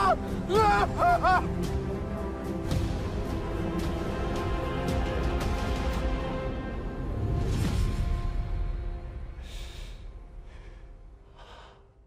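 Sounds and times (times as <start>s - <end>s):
man yelling: 0.0s - 1.5s
background music: 0.0s - 12.0s.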